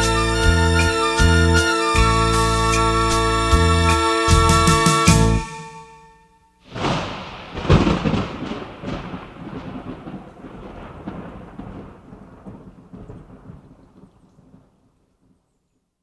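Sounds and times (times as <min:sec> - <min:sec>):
thunder clap and rumble: 0:06.7 - 0:15.4.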